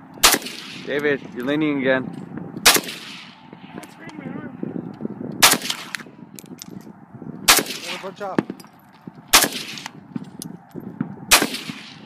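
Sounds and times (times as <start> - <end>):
rifle gunshots: 0.2 - 1.0, 2.6 - 3.5, 5.4 - 6.1, 7.5 - 8.6, 9.3 - 10.0, 11.3 - 12.0.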